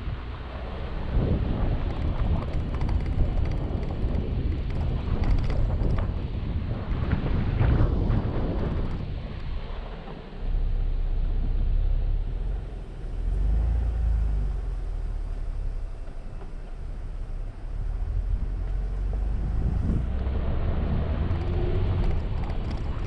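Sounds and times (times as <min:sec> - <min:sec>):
vehicle driving on gravel road: 0:00.0 - 0:23.0
wind noise on microphone: 0:00.0 - 0:23.0.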